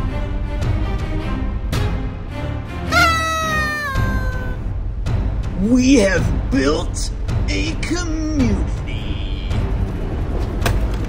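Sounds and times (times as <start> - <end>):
background music: 0.0 - 10.6
high-pitched cry: 2.9 - 4.6.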